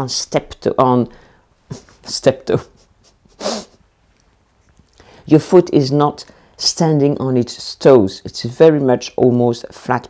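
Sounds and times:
woman laughing breathily: 2.7s - 3.8s.

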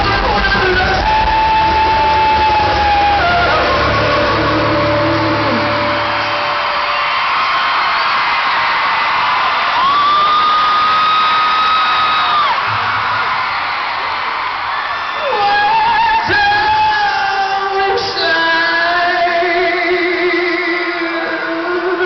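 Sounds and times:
man singing high wailing notes: 0.0s - 6.3s
crowd screaming and cheering: 0.0s - 22.0s
live rock band: 0.0s - 22.0s.

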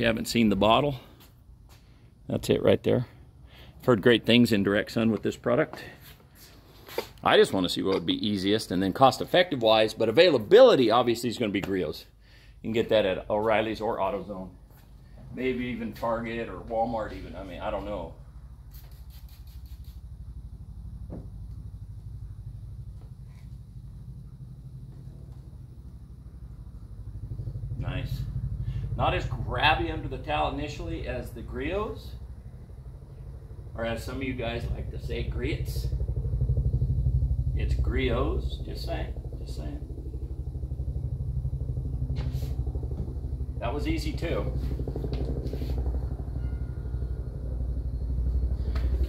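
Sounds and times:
steady low rumble: 0.0s - 49.0s
engine idling: 2.8s - 49.0s
spray bottle misting: 18.7s - 20.0s.

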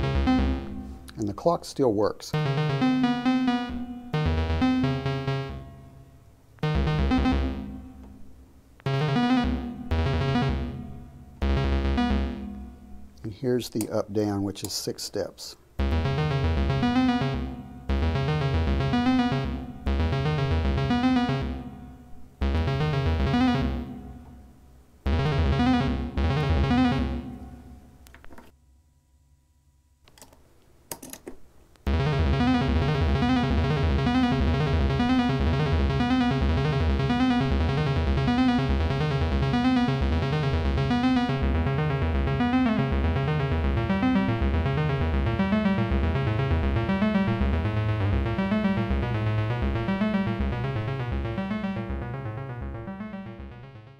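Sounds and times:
synthesizer repeating note sequence: 0.0s - 1.5s, 2.3s - 14.0s, 15.8s - 27.8s, 31.9s - 53.9s.

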